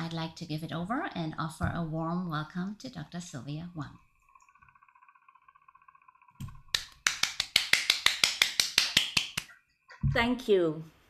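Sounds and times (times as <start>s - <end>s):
hands clapping quickly: 6.7s - 9.6s.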